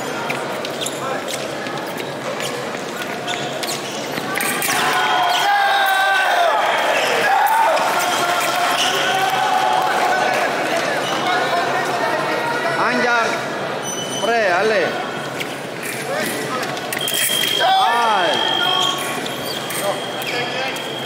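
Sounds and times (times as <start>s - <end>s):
loud shouting voices: 4.3s - 13.2s, 17.5s - 19.0s.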